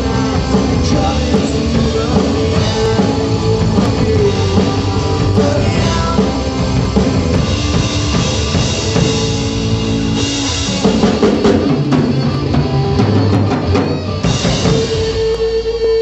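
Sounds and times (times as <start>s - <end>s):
busy drumming: 0.0s - 16.0s
live rock band playing: 0.0s - 16.0s.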